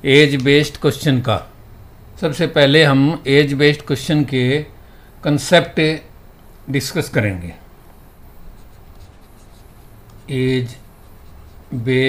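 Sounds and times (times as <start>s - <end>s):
stylus scratching on tablet: 8.4s - 11.8s.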